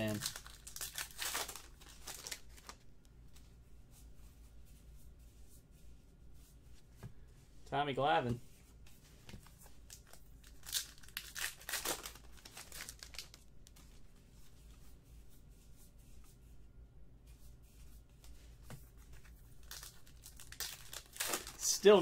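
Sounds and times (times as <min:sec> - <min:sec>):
card pack wrapper crinkling: 0:00.0 - 0:02.8, 0:09.9 - 0:13.4, 0:19.6 - 0:21.9
trading cards rustling: 0:00.0 - 0:02.8, 0:09.2 - 0:14.0, 0:18.6 - 0:22.0.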